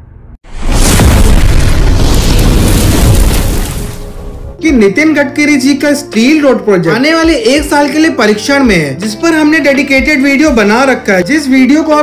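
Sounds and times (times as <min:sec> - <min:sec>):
explosion boom: 0:00.0 - 0:04.6.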